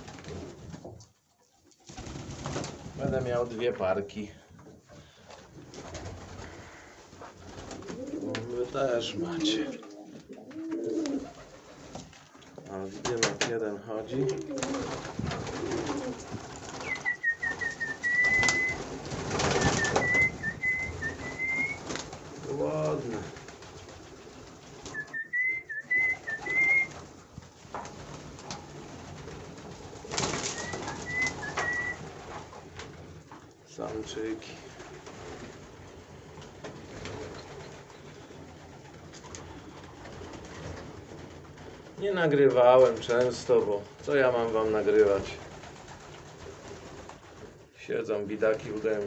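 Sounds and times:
pigeon wingbeats: 0:00.0 - 0:03.6, 0:04.6 - 0:47.8
birds pecking feed: 0:00.0 - 0:49.0
pigeons cooing: 0:07.6 - 0:11.6, 0:14.2 - 0:21.8, 0:24.8 - 0:27.0, 0:30.2 - 0:32.0.

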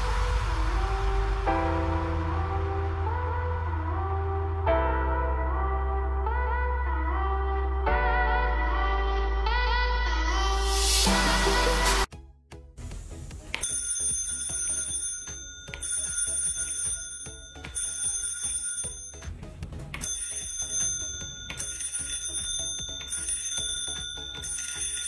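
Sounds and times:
electric bell ringing: 0:13.6 - 0:19.4, 0:20.0 - 0:25.0.

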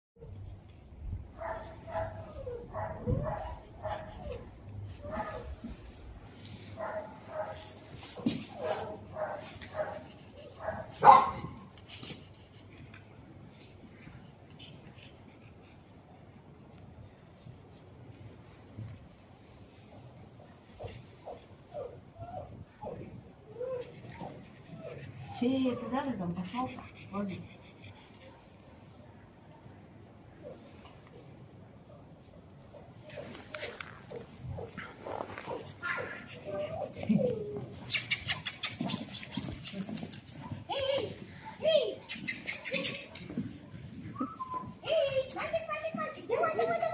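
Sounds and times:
dog barking high-pitched: 0:10.6 - 0:11.4
puppy whimpering: 0:32.2 - 0:40.6.

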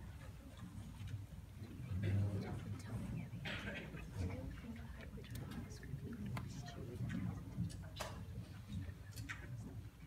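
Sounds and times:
low murmur of room noise: 0:00.0 - 0:10.0.

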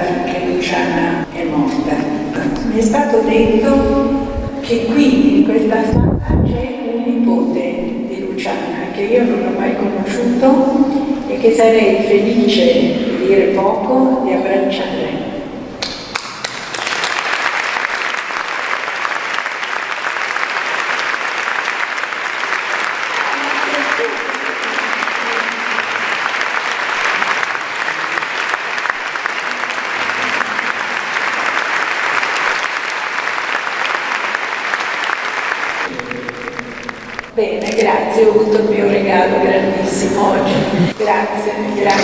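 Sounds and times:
audience applause: 0:15.8 - 0:37.8.

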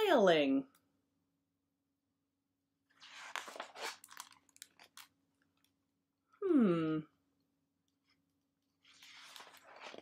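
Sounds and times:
book pages rustling: 0:02.9 - 0:05.1, 0:08.8 - 0:10.0.

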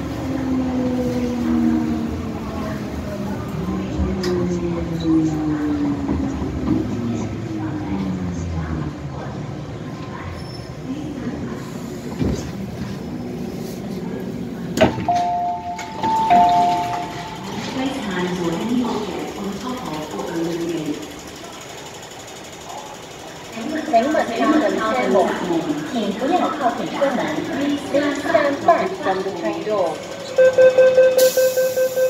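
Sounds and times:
voices: 0:00.0 - 0:30.5
electric train whine: 0:14.8 - 0:22.6
two-note door chime: 0:15.1 - 0:17.3.

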